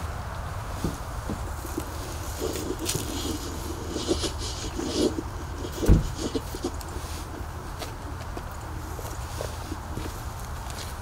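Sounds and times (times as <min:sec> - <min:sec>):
low outdoor rumble: 0:00.0 - 0:11.0
light knocks and rustles: 0:00.8 - 0:01.9, 0:05.6 - 0:06.7
loud thump: 0:05.8 - 0:06.2.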